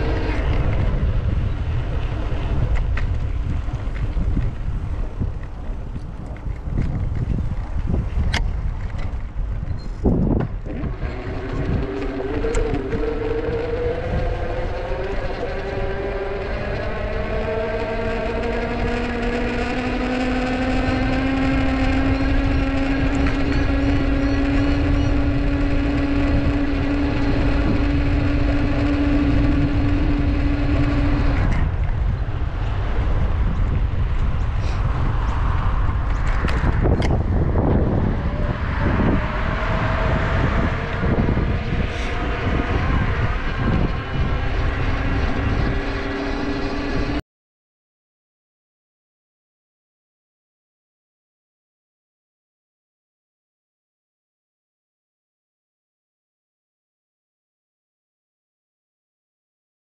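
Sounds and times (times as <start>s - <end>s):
humming tone rising in pitch: 0.0s - 4.4s, 9.8s - 34.4s, 35.0s - 47.2s
wind rushing over microphone: 0.0s - 47.2s.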